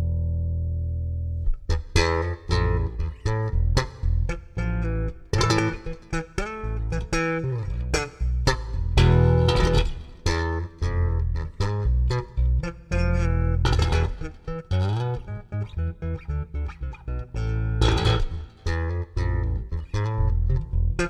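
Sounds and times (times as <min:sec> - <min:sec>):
electric bass guitar playing: 0:00.0 - 0:21.0.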